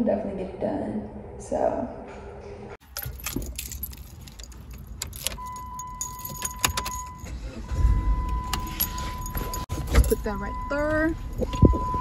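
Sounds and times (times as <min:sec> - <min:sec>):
keys jangling: 0:02.8 - 0:07.3, 0:08.5 - 0:10.2
high electronic beep tone: 0:05.4 - 0:09.7.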